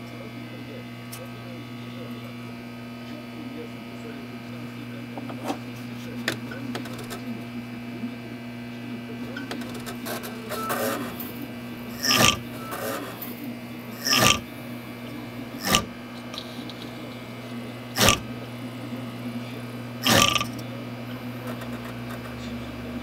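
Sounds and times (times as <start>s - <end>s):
computer fans humming: 0.0s - 23.0s.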